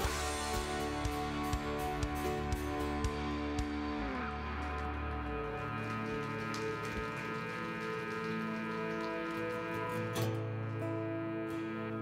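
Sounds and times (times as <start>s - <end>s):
live band sustained chords: 0.0s - 12.0s.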